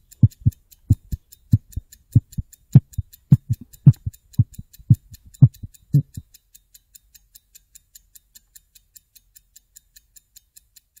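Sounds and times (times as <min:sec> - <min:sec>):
fast even ticking: 0:00.0 - 0:11.0.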